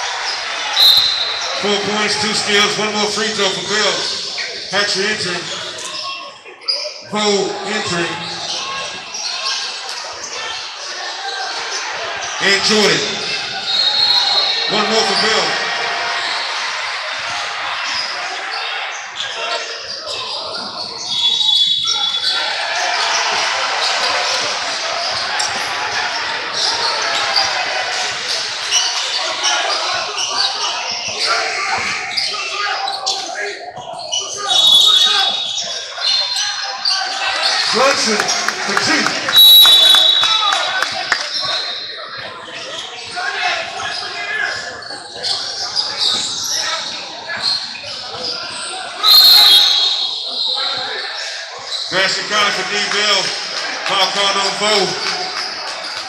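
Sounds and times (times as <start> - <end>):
voices of players and spectators: 0.0 - 56.0
shrill high tones: 49.0 - 50.8.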